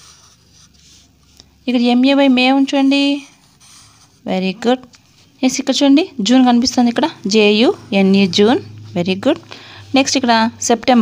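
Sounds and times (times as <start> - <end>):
pencil scratching on paper: 0.0 - 4.4
woman speaking: 1.6 - 3.4, 4.2 - 11.0.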